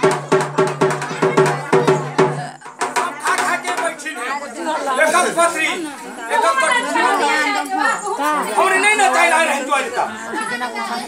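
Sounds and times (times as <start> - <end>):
overlapping chatter: 0.0 - 11.0.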